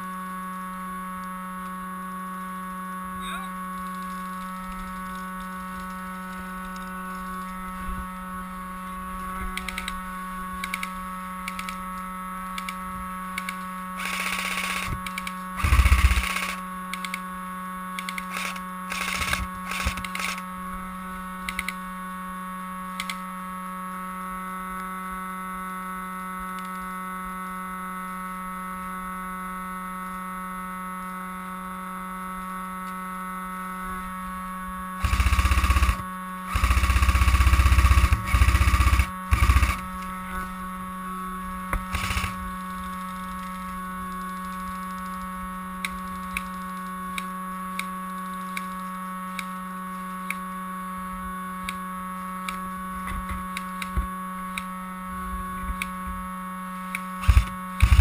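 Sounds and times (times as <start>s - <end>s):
steady electrical hum and whine: 0.0s - 58.0s
faint clicks: 3.8s - 7.6s, 10.6s - 11.8s, 12.6s - 12.8s, 13.4s - 13.7s, 14.9s - 17.2s, 18.0s - 20.4s, 21.4s - 21.8s, 23.0s - 23.2s, 41.7s - 50.4s.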